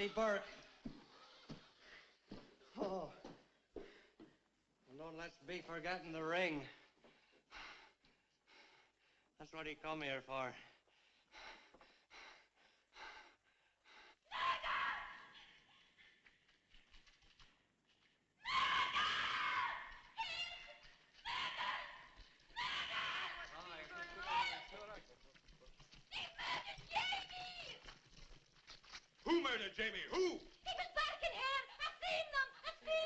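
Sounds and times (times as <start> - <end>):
shrill wavering cries: 18.4 - 24.7.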